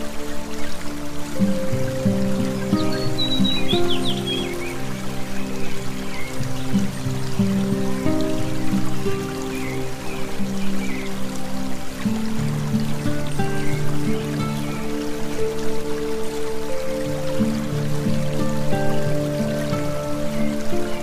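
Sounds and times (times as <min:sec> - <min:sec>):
slow calm background music: 0:00.0 - 0:21.0
trickling water: 0:00.0 - 0:21.0.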